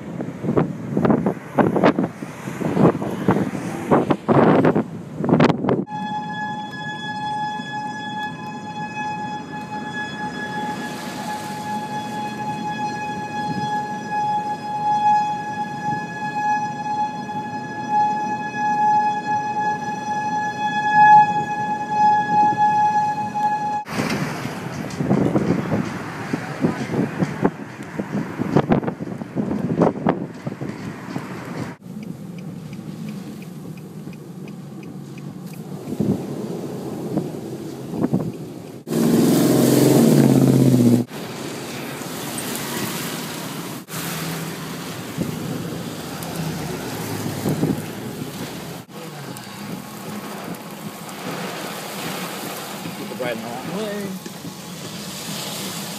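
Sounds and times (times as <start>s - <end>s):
rushing wind buffeting: 0.0s - 6.1s, 21.3s - 55.9s
warning siren wailing: 5.7s - 23.9s, 33.6s - 41.1s.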